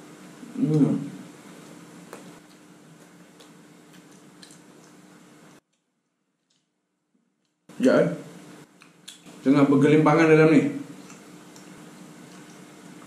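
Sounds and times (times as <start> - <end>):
low steady room hum: 0.0 - 13.0
quiet chewing with wet mouth clicks: 1.6 - 6.7, 8.6 - 9.4, 10.9 - 13.0.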